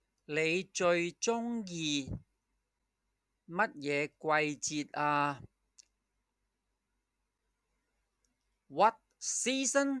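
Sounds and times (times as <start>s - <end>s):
person speaking: 0.0s - 2.4s, 3.4s - 6.0s, 8.3s - 10.0s
faint click: 5.7s - 6.0s, 8.2s - 8.6s.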